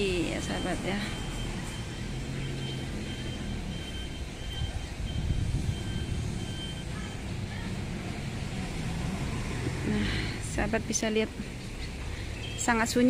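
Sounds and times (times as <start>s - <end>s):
low rumble of traffic: 0.0s - 13.0s
faint high short beep: 0.5s - 7.3s.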